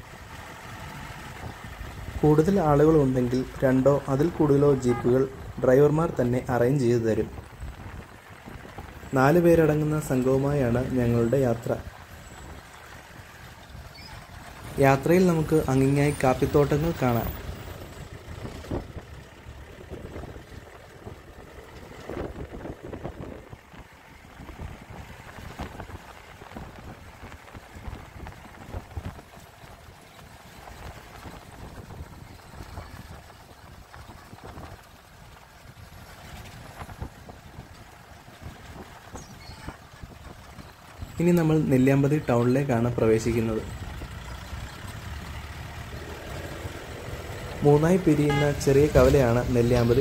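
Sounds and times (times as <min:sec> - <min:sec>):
vehicle engine and road noise: 0:00.0 - 0:50.0.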